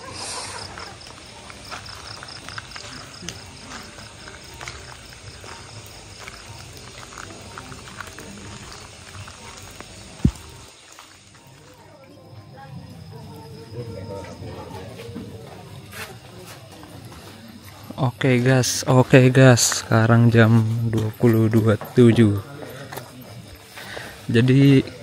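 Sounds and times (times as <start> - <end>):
distant voices: 0.0 - 25.0.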